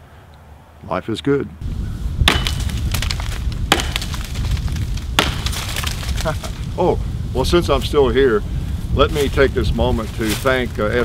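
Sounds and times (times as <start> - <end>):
axe chopping log: 2.2 - 6.3.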